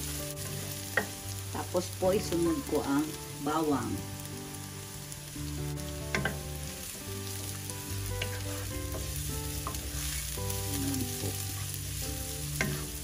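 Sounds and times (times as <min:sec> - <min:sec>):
garlic and onions sizzling in oil: 0:00.0 - 0:13.0
spatula scraping and knocking pan: 0:08.2 - 0:10.4, 0:12.5 - 0:13.0.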